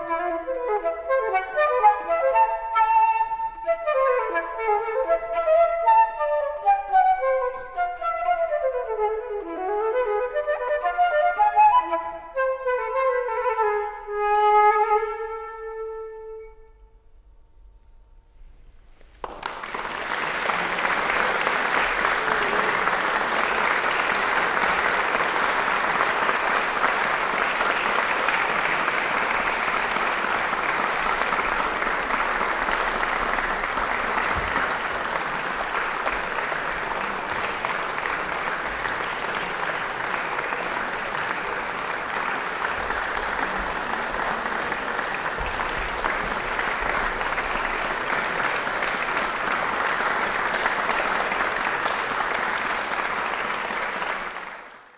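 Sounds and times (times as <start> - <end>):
audience applauding: 18.8 - 54.9.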